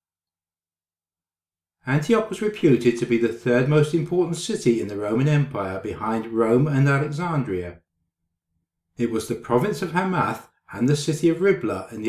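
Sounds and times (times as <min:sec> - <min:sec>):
man narrating: 0:01.9 - 0:07.8, 0:09.0 - 0:12.0.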